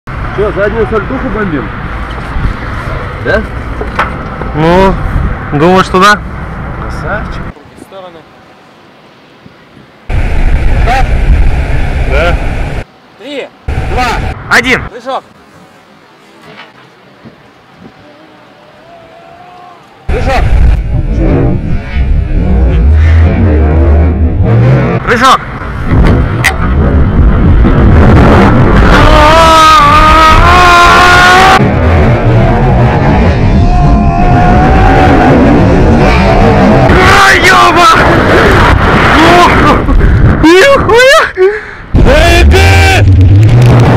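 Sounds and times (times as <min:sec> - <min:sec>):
wind buffeting microphone: 0:20.1 - 0:22.9, 0:25.6 - 0:29.2
sustained pitched tone: 0:26.4 - 0:39.6.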